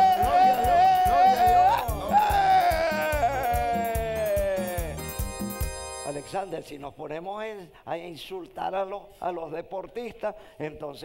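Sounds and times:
drawn-out crying voice: 0.0s - 5.0s
music with steady drum beat: 0.0s - 5.9s.

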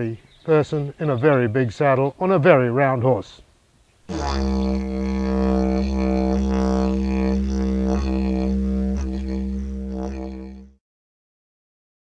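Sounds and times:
didgeridoo drone: 4.1s - 10.8s.

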